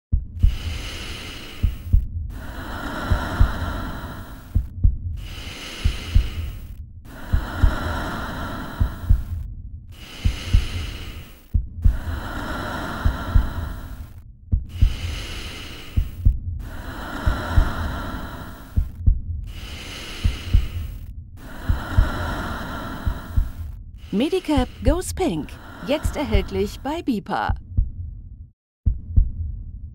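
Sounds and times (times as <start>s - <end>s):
low heartbeat-like thumps: 0.0s - 29.9s
steady hum: 0.4s - 27.1s.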